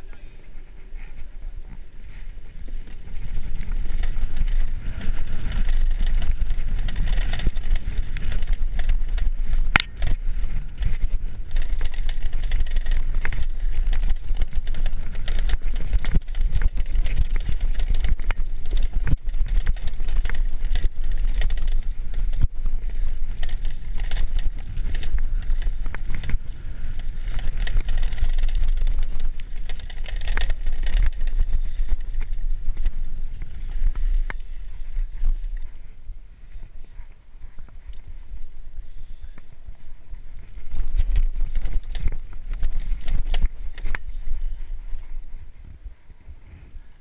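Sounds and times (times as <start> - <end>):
bike clicks and knocks: 0.0 - 45.4
tyres on dirt and gravel: 0.0 - 47.0
wind buffeting microphone: 0.0 - 47.0.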